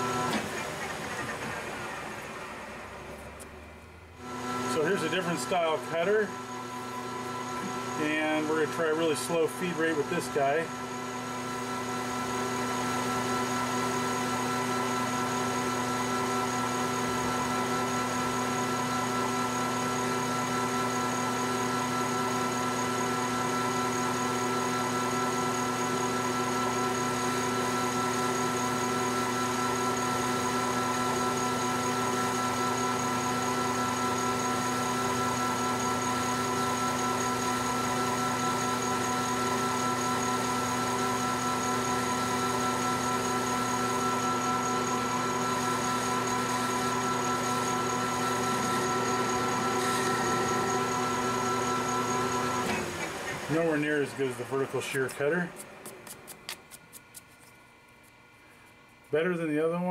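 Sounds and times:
metal lathe whining: 4.2 - 55.6
cutting tool turning metal: 26.9 - 58.2.

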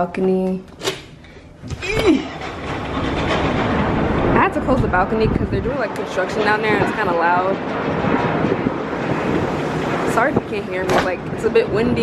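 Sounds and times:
construction din: 0.0 - 12.0
wind buffeting microphone: 1.6 - 12.0.

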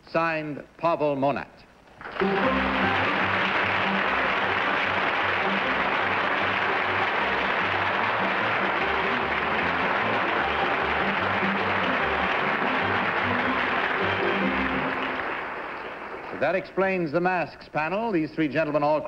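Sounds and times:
music playing: 2.0 - 15.9
audience applauding: 2.0 - 16.8.

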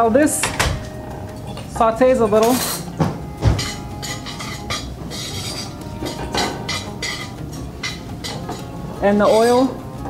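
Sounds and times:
utensil clinking and scraping pot: 3.6 - 9.8.

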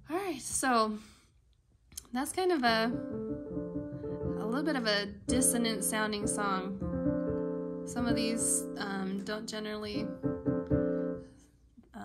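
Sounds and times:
dissonant piano chords: 2.8 - 11.2.

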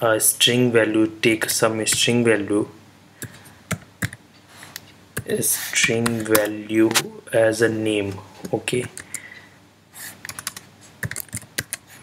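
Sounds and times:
keyboard typing: 3.2 - 4.2, 10.2 - 11.9.

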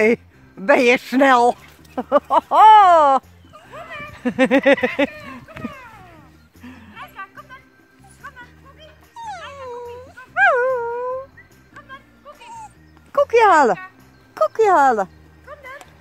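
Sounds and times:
background music: 0.0 - 16.0
dog whining: 9.0 - 11.4, 12.3 - 12.9.

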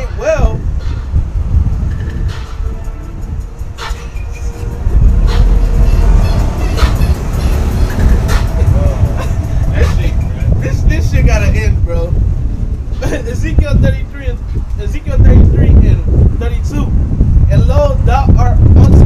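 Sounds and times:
wind buffeting microphone: 0.0 - 19.0
voices: 3.4 - 12.2, 13.0 - 16.9.

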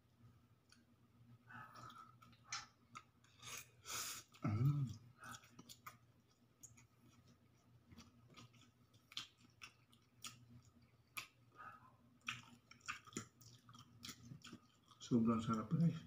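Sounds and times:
low steady hum: 0.0 - 16.0
person chewing: 1.6 - 16.0.

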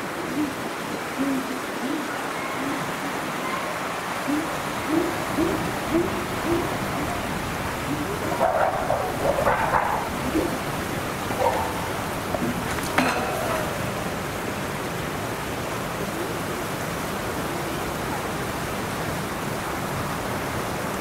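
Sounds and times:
chimpanzee pant-hooting: 4.3 - 12.7.

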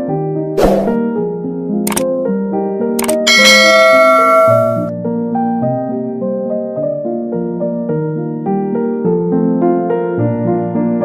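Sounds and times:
soft piano music: 0.0 - 11.0
sharp mouse clicks: 1.9 - 2.1, 3.0 - 3.2
notification bell ding: 3.3 - 4.9.

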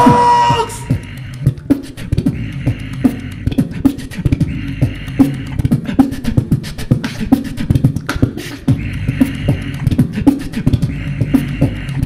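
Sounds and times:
beatboxing into a microphone: 0.0 - 12.0.

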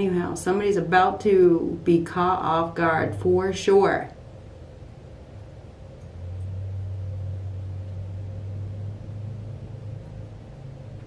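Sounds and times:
faint steady hum: 0.0 - 11.0
low steady rumble: 0.0 - 11.0.

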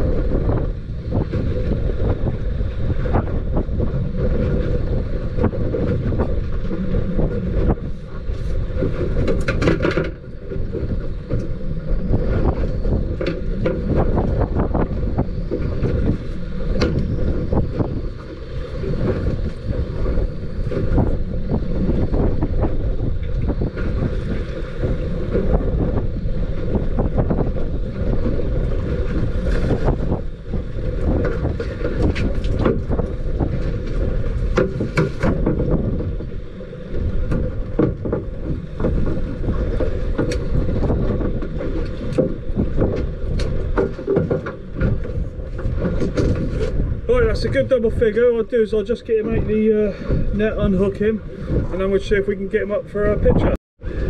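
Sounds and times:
choppy water: 0.0 - 54.0
wind buffeting microphone: 0.0 - 54.0.

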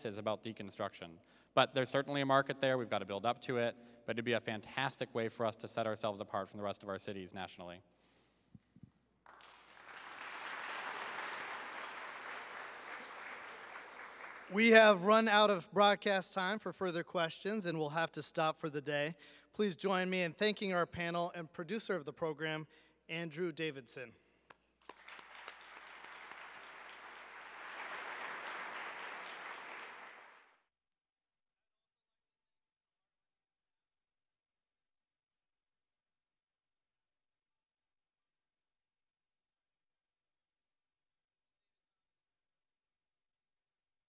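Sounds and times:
audience applauding: 9.3 - 15.1, 24.8 - 30.6.

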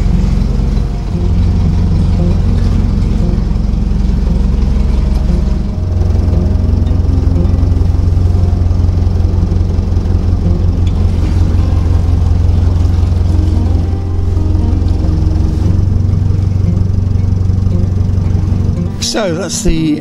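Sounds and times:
boat diesel engine running: 0.0 - 20.0.

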